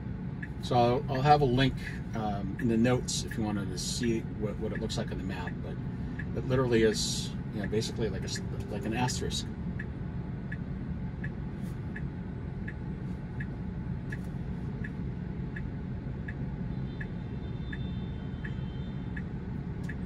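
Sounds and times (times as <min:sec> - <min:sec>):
low steady hum: 0:00.0 - 0:20.0
car turn signal ticking: 0:00.4 - 0:00.7, 0:04.1 - 0:20.0.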